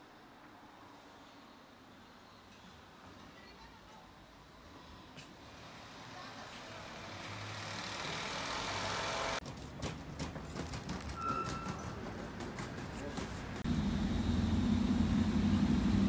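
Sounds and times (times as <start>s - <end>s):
street traffic: 0.0s - 16.0s
vehicle approaching: 5.4s - 9.4s, 13.1s - 16.0s.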